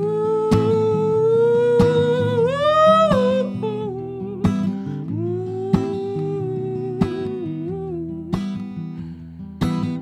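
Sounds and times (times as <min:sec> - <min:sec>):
strummed acoustic guitar: 0:00.0 - 0:10.0.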